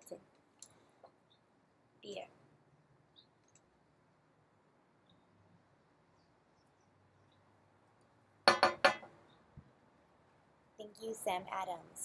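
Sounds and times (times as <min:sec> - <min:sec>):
beer glass clinking: 0:08.5 - 0:09.1.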